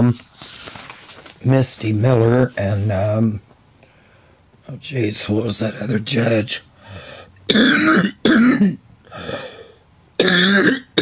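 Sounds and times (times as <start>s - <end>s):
soft breath: 3.8s - 4.5s, 6.8s - 7.3s, 9.1s - 9.8s
woman coughing: 7.5s - 8.8s, 10.2s - 11.0s.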